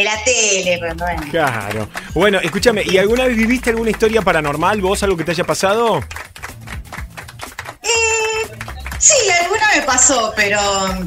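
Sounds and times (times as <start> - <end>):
woman saying eh: 0.0 - 1.2, 7.8 - 11.0.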